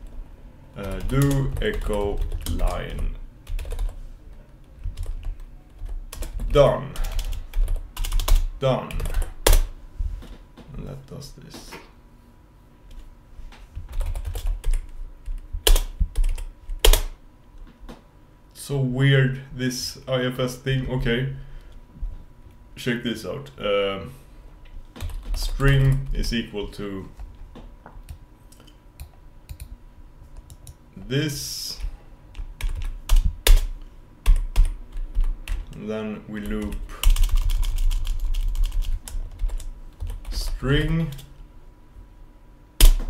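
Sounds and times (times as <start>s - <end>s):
typing on computer keyboard: 3.5s - 4.0s, 4.8s - 9.6s, 13.9s - 17.1s, 25.0s - 26.0s, 32.4s - 33.7s, 36.4s - 40.4s.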